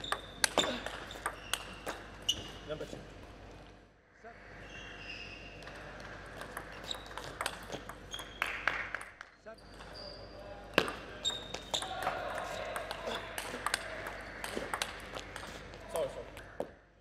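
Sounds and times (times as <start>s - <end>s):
shoes squeaking on floor: 0.0s - 2.9s, 9.6s - 10.5s, 11.2s - 12.0s.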